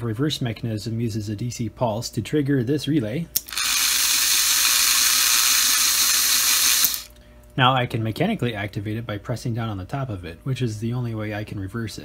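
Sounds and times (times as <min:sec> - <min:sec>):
model train motor whirring: 0:03.4 - 0:07.1.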